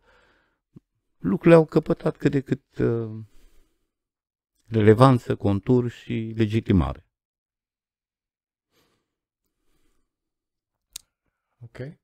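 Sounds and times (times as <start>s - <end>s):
faint breath: 0.0s - 0.6s, 3.2s - 4.0s, 8.7s - 10.2s.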